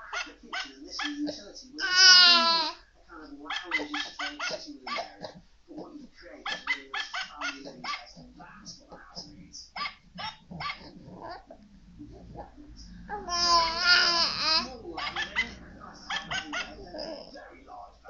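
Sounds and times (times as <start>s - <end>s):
dog barking and yipping: 0.0s - 1.3s, 9.8s - 11.5s, 13.1s - 17.3s.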